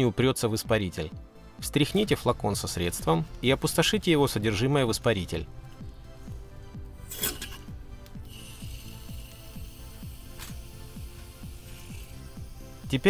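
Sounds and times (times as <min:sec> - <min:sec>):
background music with regular beat: 0:00.0 - 0:13.0
aerosol can spraying hiss: 0:08.2 - 0:13.0.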